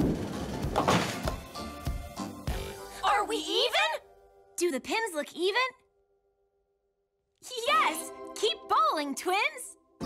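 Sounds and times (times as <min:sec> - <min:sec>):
bowling ball rolling down lane: 0:00.0 - 0:01.4
cartoon background music: 0:00.1 - 0:05.8, 0:07.4 - 0:10.0.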